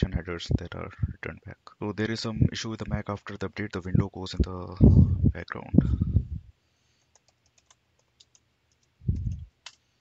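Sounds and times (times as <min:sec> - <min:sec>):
keyboard typing clicks: 0:07.0 - 0:09.8.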